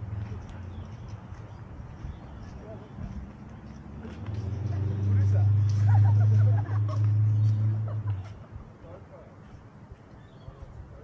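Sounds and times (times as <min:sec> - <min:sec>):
vehicle engine hum: 0:00.0 - 0:10.0
street background noise: 0:00.0 - 0:11.0.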